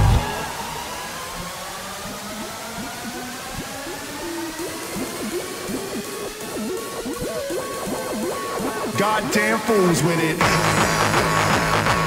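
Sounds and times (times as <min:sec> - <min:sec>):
rising noise sweep: 0:00.0 - 0:09.0
climbing synth tones: 0:00.0 - 0:09.1
warbling electronic squiggles: 0:02.0 - 0:09.0.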